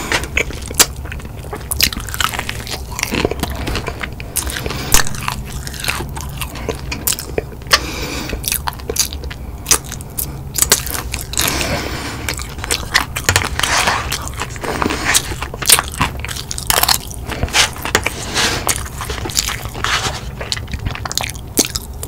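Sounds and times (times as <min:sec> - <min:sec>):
crunchy chewing: 0:00.0 - 0:22.0
wet mouth sounds: 0:00.0 - 0:22.0.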